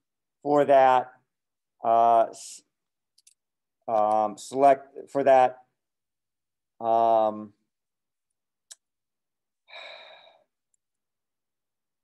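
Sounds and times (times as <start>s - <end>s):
man breathing: 9.6s - 10.6s.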